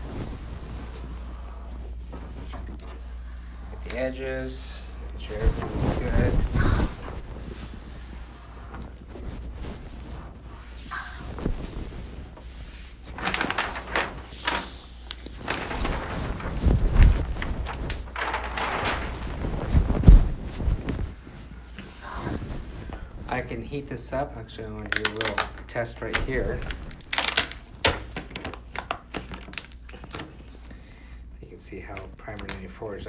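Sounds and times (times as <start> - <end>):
squeegee scuffing vinyl film: 5.2 - 23.0.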